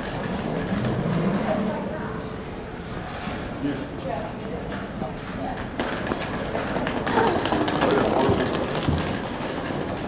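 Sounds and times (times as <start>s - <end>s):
street background rumble: 0.0s - 10.0s.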